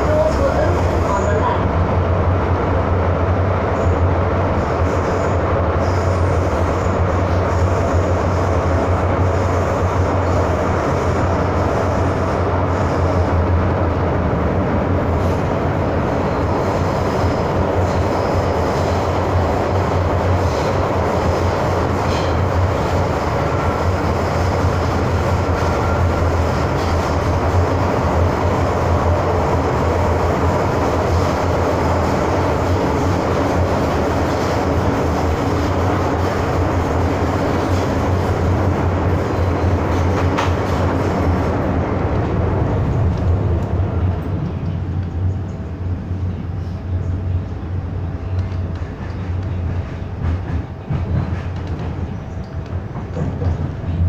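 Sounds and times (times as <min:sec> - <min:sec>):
low train hum: 0:00.0 - 0:54.0
train wheels rumbling on rail: 0:00.0 - 0:54.0.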